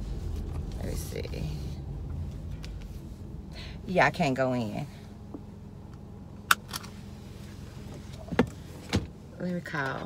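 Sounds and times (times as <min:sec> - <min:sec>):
car engine hum: 0:00.0 - 0:10.0.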